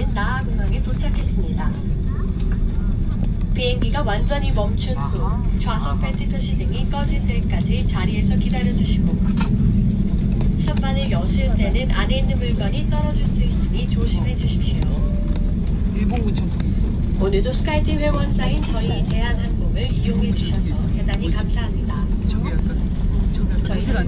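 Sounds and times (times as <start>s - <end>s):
people talking: 0.0s - 9.5s, 10.5s - 24.0s
aircraft cabin rumble: 0.0s - 24.0s.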